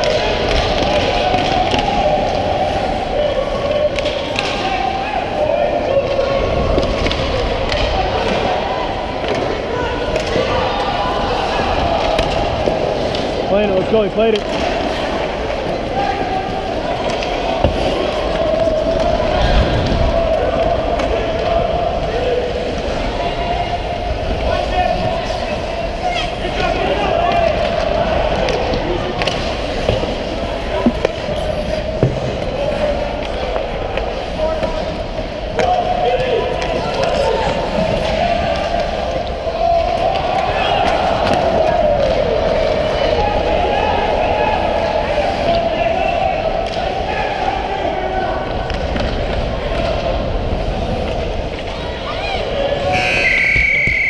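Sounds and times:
sticks clacking on puck: 0:28.4 - 0:32.5.

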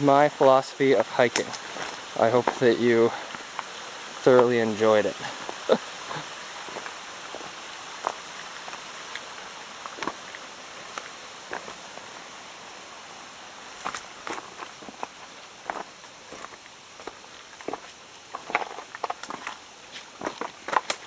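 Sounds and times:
steady background hiss: 0:00.0 - 0:21.0
footsteps crunching on gravel: 0:00.8 - 0:03.7, 0:05.1 - 0:12.2, 0:13.8 - 0:21.0.

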